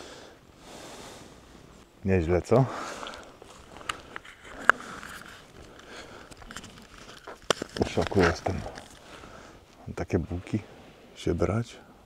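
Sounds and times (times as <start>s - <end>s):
footsteps on forest floor litter: 3.1s - 4.2s, 4.8s - 9.1s.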